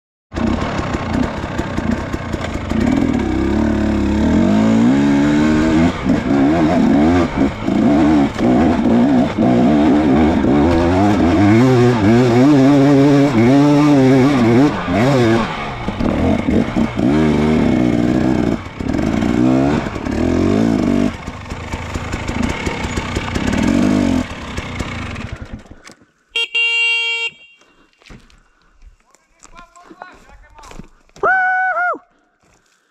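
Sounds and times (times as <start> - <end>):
dirt bike engine revving: 0.4 - 25.8
short buzzy beep: 26.4 - 27.7.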